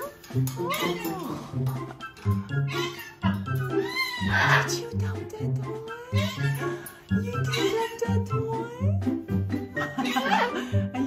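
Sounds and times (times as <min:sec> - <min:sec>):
macaw squawking call: 0:02.6 - 0:04.9.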